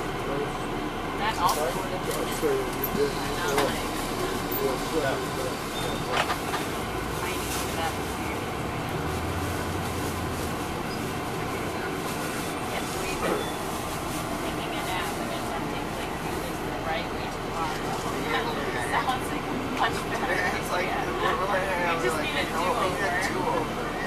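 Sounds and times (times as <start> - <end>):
diesel engine running: 0.0 - 24.0
indistinct voices: 0.0 - 24.0
road and body noise hiss: 1.5 - 18.3.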